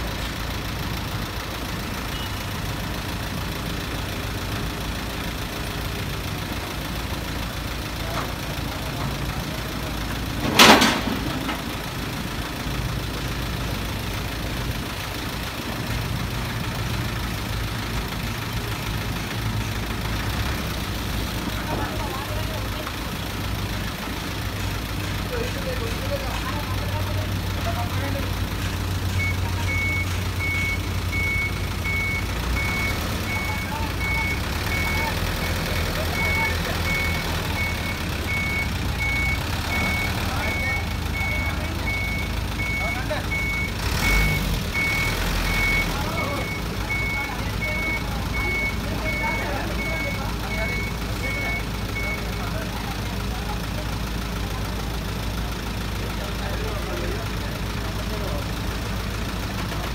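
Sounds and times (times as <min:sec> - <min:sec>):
truck engine running: 0:00.0 - 0:59.9
truck warning beeper: 0:01.0 - 0:04.1, 0:25.4 - 0:54.4
clunk: 0:10.3 - 0:11.8.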